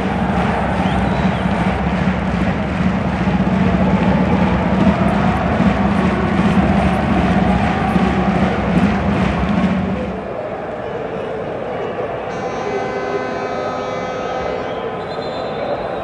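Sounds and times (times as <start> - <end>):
stadium crowd singing in unison: 0.0 - 16.0.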